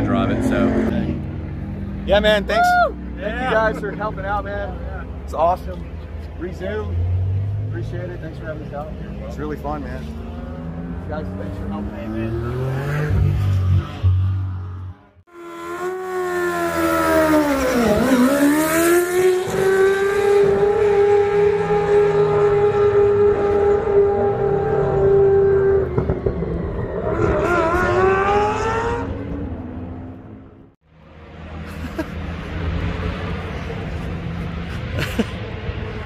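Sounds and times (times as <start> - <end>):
rotary engine at high revs: 6.9 - 29.6.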